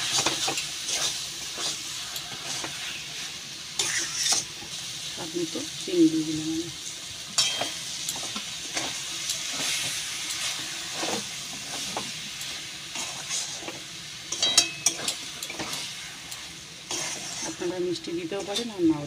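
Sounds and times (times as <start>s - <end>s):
spatula scraping a pan: 0.0s - 4.8s, 7.4s - 18.8s
food sizzling in a pan: 0.0s - 19.0s.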